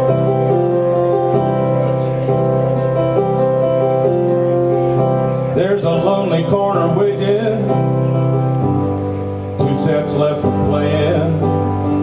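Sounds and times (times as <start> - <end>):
sustained piano chords: 0.0 - 12.0
man singing: 5.5 - 8.5, 9.6 - 12.0.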